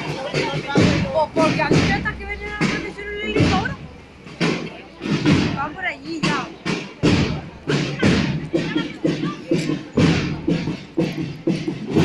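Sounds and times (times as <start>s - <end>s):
crowd murmur: 0.0s - 12.0s
marching drum beating: 0.0s - 12.0s.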